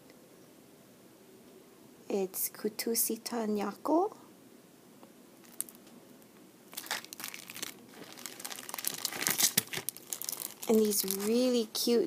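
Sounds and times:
plastic sleeves crinkling: 0:05.4 - 0:05.8, 0:06.7 - 0:11.9.

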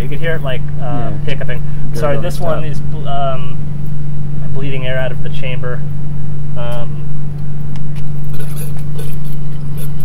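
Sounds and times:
loud steady low hum: 0:00.0 - 0:10.0.

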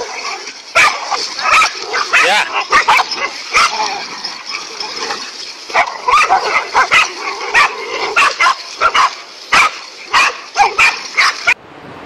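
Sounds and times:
dogs barking aggressively: 0:00.0 - 0:11.6.

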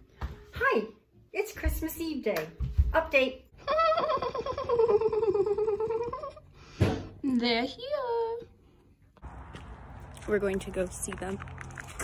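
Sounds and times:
high-pitched squealing laugh: 0:03.6 - 0:06.4.

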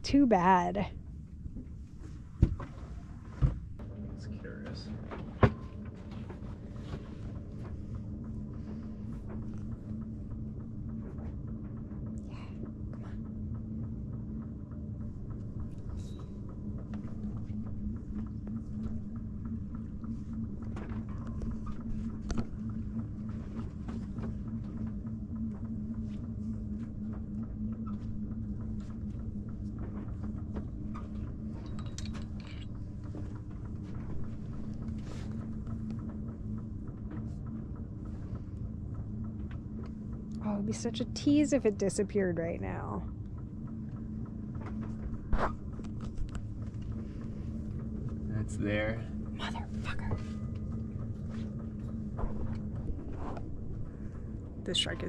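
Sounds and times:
boat engine humming: 0:00.0 - 0:55.0.

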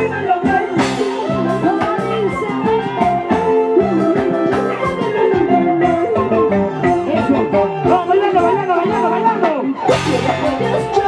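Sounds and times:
gliding melody line: 0:00.0 - 0:11.0
guitar: 0:00.0 - 0:11.0
steady drum beat: 0:09.9 - 0:11.0.

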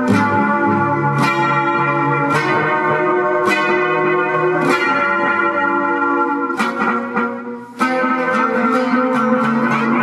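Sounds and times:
electric guitar chords: 0:00.0 - 0:10.0.

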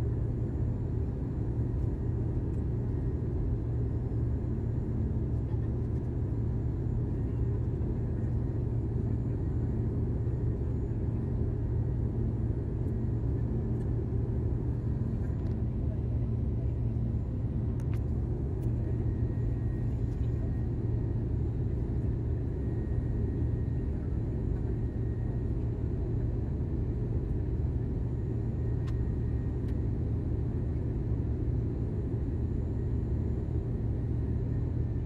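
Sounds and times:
airplane cabin roar: 0:00.0 - 0:35.0.

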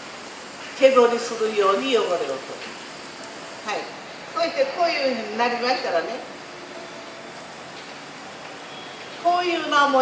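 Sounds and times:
faint outdoor hiss and hum: 0:00.0 - 0:10.0.

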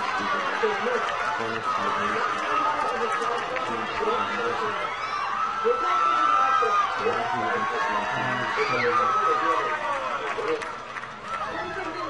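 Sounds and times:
crowd shouting and chattering: 0:00.0 - 0:12.0.

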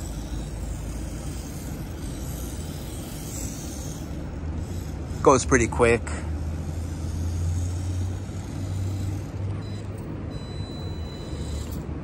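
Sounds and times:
small electric motor whining: 0:00.0 - 0:12.0
steady low rumble: 0:00.0 - 0:12.0.

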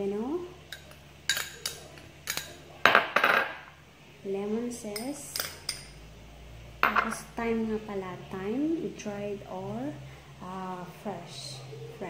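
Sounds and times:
metal spoon clinking glass bowl: 0:00.7 - 0:03.5, 0:04.9 - 0:06.0.

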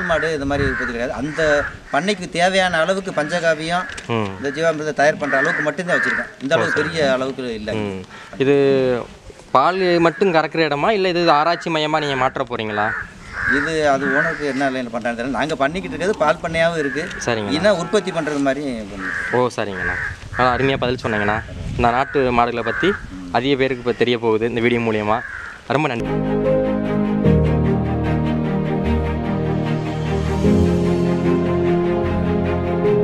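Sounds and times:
crow cawing: 0:00.0 - 0:07.4, 0:08.1 - 0:08.4, 0:10.0 - 0:10.4, 0:11.4 - 0:24.1, 0:25.0 - 0:25.8
man speaking: 0:00.0 - 0:12.9, 0:13.5 - 0:26.0
man talking: 0:00.0 - 0:26.1.

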